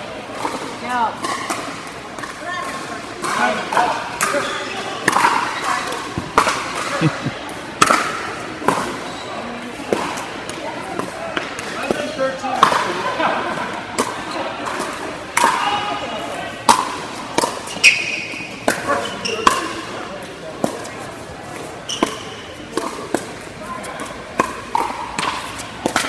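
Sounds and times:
people talking: 2.0 - 17.0, 18.7 - 26.0.

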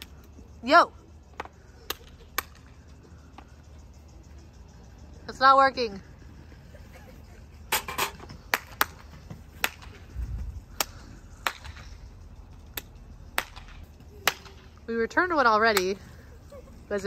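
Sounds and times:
hand claps: 8.5 - 9.0, 9.6 - 10.0, 10.7 - 11.8, 12.7 - 14.6.

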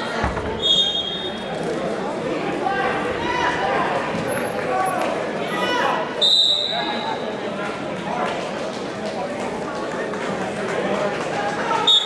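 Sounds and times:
referee's whistle blast: 0.6 - 1.4, 6.2 - 7.0.

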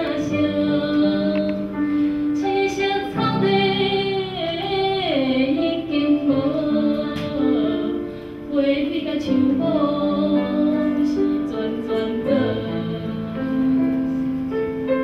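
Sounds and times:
musical accompaniment: 0.0 - 15.0.

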